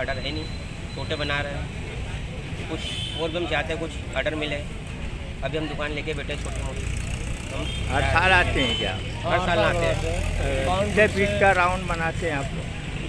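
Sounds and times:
low rumble of road traffic: 0.0s - 13.0s
man speaking: 7.6s - 12.6s.

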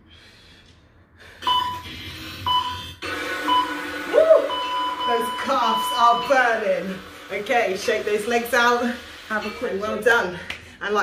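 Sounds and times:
electronic timer beeps: 1.4s - 1.8s, 2.4s - 3.8s, 4.4s - 6.6s.

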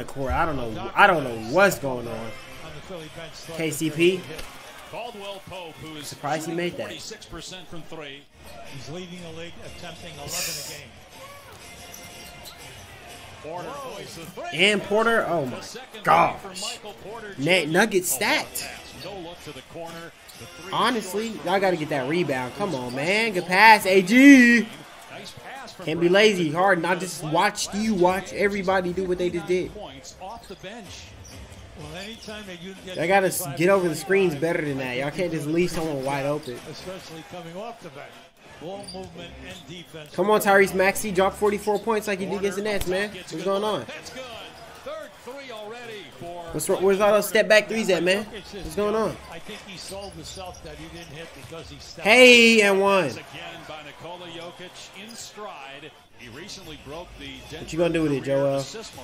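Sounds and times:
commentator talking: 0.0s - 4.4s, 5.0s - 8.0s, 8.7s - 10.9s, 13.6s - 30.5s, 32.0s - 37.0s, 40.0s - 44.4s, 46.1s - 55.4s, 56.2s - 59.0s
arena crowd noise: 0.0s - 59.0s.

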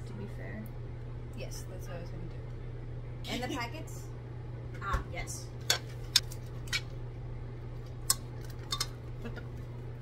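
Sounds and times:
steady low hum: 0.0s - 10.0s
metal fork clinking on steel pot: 8.1s - 9.0s.

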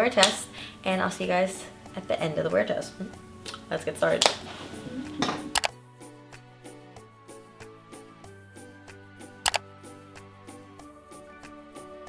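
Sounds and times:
background music with beat: 3.0s - 12.0s.

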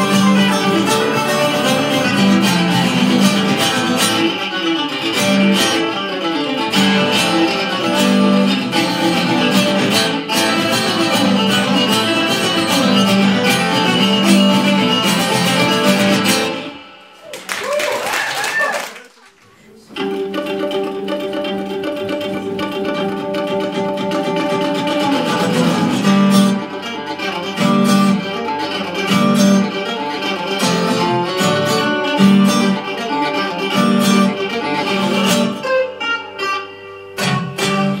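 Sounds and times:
acoustic guitar music: 0.0s - 17.2s, 19.6s - 38.0s.

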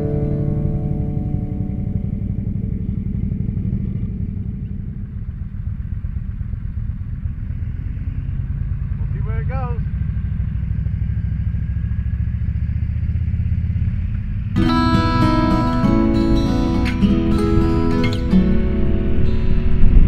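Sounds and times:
wavering high sound: 0.0s - 3.9s, 14.6s - 20.0s
motorcycle engine rumbling: 0.0s - 20.0s.

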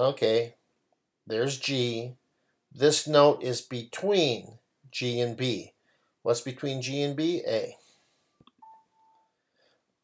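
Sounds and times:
short electronic beep: 8.6s - 9.4s.

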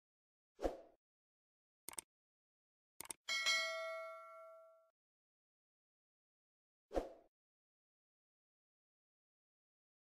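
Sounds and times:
mouse clicks: 1.9s - 2.1s
notification bell chime: 3.3s - 4.8s.

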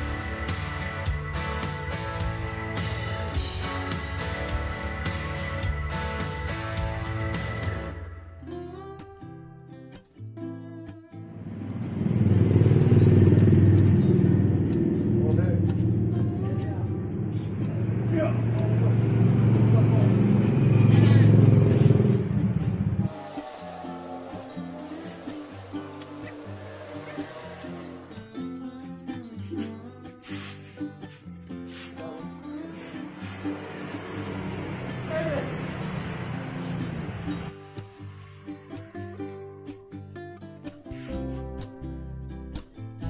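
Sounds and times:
background guitar music: 0.0s - 43.0s.

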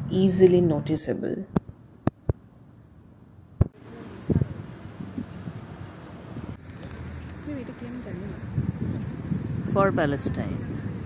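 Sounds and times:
outdoor background hiss: 0.0s - 10.4s.

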